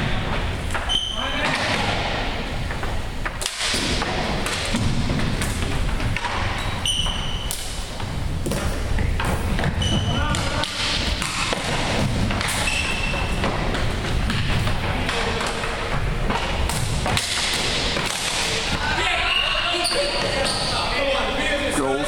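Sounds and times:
sneakers squeaking: 0.0s - 3.4s, 4.0s - 21.6s
players calling out: 17.4s - 21.8s.

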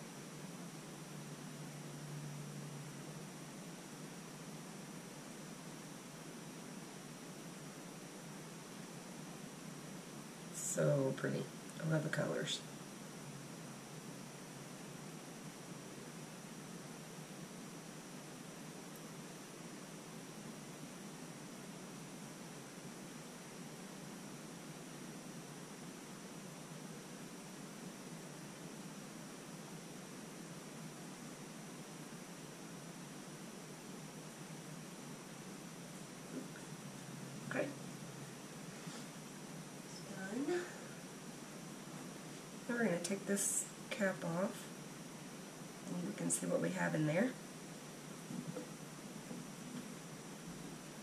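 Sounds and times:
faint high-pitched whine: 0.0s - 51.0s
room tone hiss: 0.0s - 51.0s.

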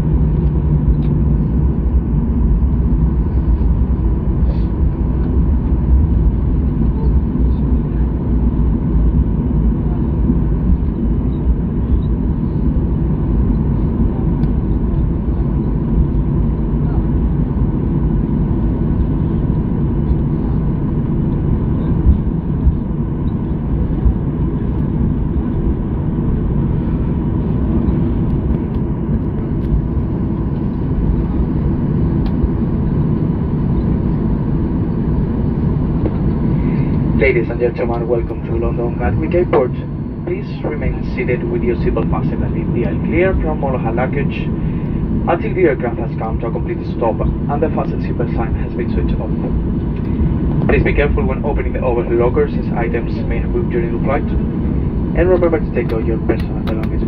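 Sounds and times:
jet engines at low power: 0.0s - 57.0s
wheels rumbling on runway: 0.0s - 57.0s.

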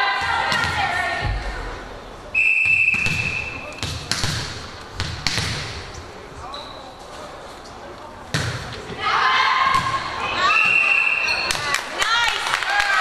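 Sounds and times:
loud shouting voices: 0.0s - 1.3s, 9.0s - 13.0s.

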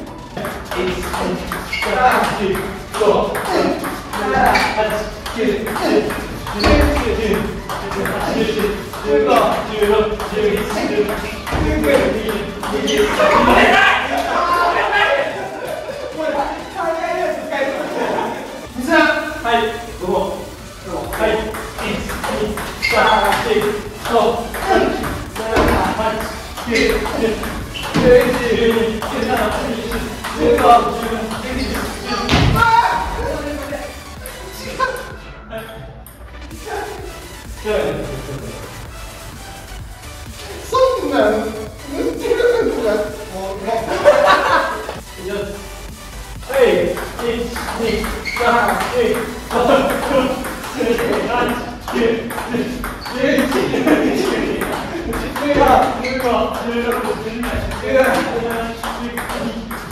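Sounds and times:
players' voices and shouts: 0.1s - 35.2s
ping pong ball pinging: 0.4s - 14.5s, 21.0s - 33.0s, 46.7s - 59.9s.

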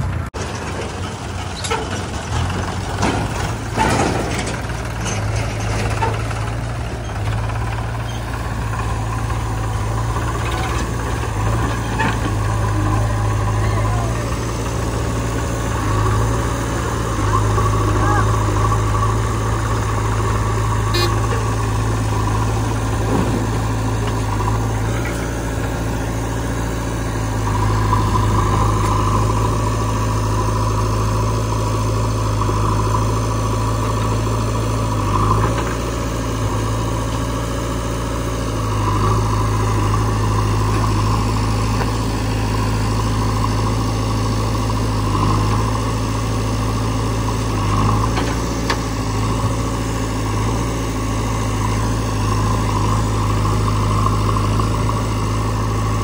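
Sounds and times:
diesel engines idling: 0.0s - 56.0s.

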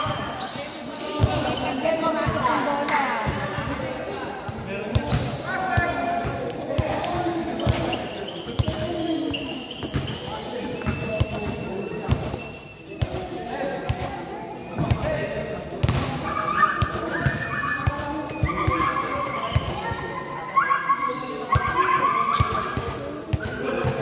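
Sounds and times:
basketball bouncing on court floor: 4.5s - 8.0s, 15.8s - 16.2s.

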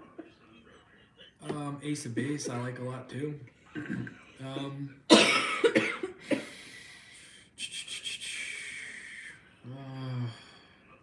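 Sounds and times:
person coughing: 3.8s - 6.6s
hissing breath: 6.4s - 10.8s.

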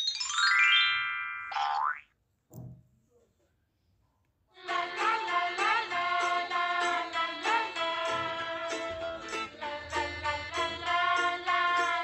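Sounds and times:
bright chime: 0.0s - 1.7s
rising cartoon glide: 0.0s - 2.0s.

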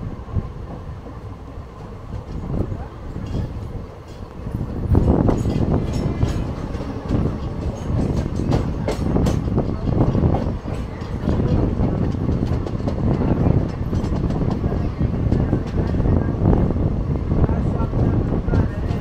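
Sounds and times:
train rumbling on track: 0.0s - 19.0s
wheels clacking and knocking: 1.8s - 16.2s.

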